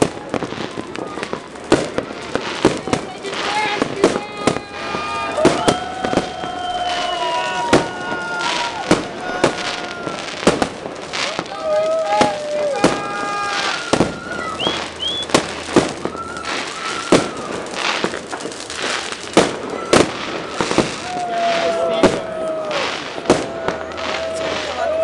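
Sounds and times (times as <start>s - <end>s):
distant fireworks popping: 0.0s - 25.0s
firecracker bangs: 0.0s - 25.0s
rising firework whistles: 0.0s - 25.0s.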